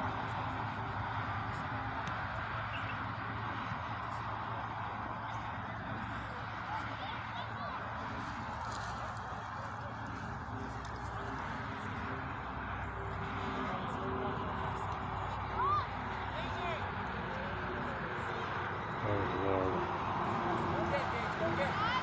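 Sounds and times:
distant voices calling out: 0.0s - 22.0s
outdoor background noise: 0.0s - 22.0s.

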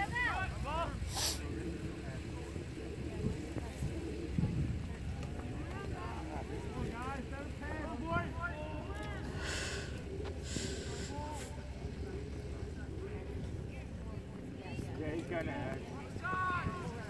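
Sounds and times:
distant shouting voices: 0.0s - 4.4s, 5.5s - 14.0s, 15.9s - 17.0s
wind rumbling on microphone: 0.0s - 17.0s
short hissing noises: 1.1s - 1.5s.

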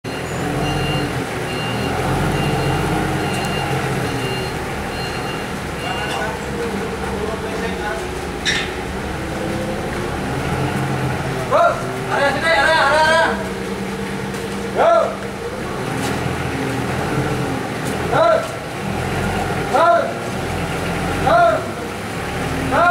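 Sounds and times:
backup alarm beeping: 0.1s - 6.6s
forklift engine running: 0.1s - 22.9s
men talking: 5.7s - 9.7s, 10.5s - 13.9s, 14.5s - 16.0s, 17.9s - 18.8s, 19.6s - 20.3s, 21.2s - 21.9s.

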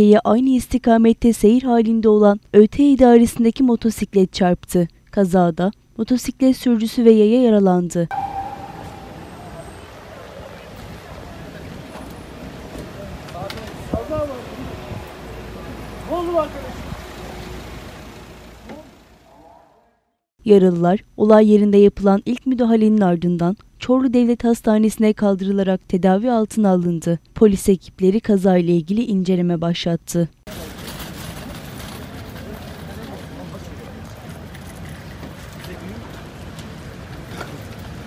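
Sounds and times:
indistinct voices: 8.1s - 10.6s
street noise: 8.1s - 19.9s, 30.5s - 38.0s
traffic hum: 8.1s - 19.9s.

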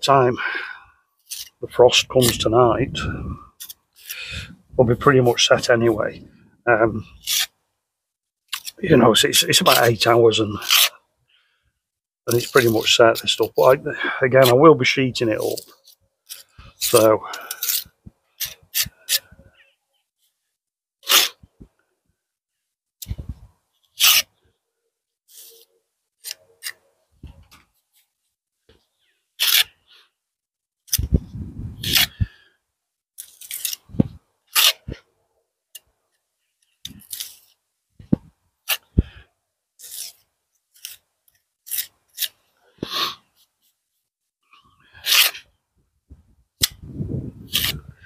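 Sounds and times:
trowel scraping mortar: 1.2s - 4.4s, 7.0s - 7.6s, 8.5s - 11.0s, 12.3s - 19.4s, 21.0s - 21.4s, 24.0s - 24.3s, 25.3s - 26.9s, 29.4s - 29.8s, 31.8s - 32.2s, 33.2s - 35.0s, 36.8s - 37.6s, 39.8s - 43.5s, 44.8s - 45.5s, 47.4s - 48.0s.

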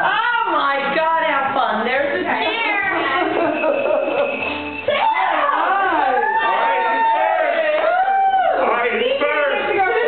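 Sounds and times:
excited voices squealing: 2.5s - 10.0s.

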